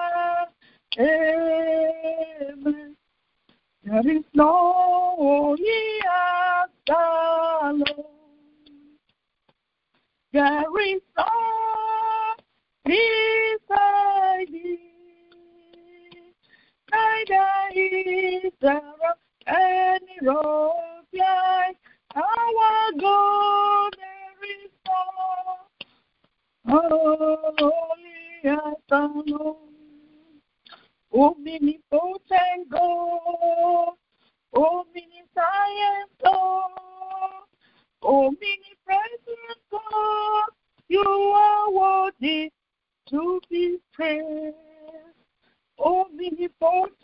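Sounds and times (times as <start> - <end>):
woman singing unaccompanied: 0.0 - 3.1, 3.8 - 9.1, 10.3 - 25.9, 26.6 - 45.2, 45.8 - 47.0.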